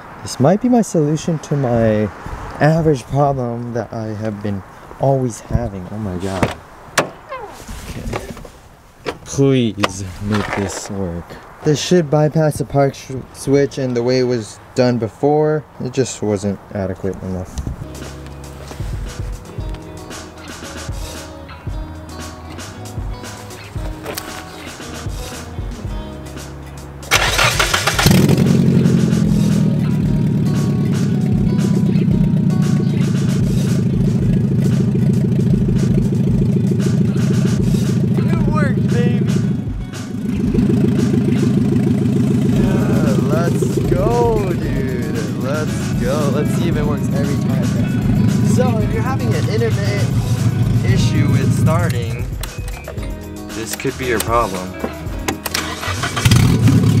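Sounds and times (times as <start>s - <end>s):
car engine cranking: 27.1s - 57.0s
car engine running: 27.1s - 57.0s.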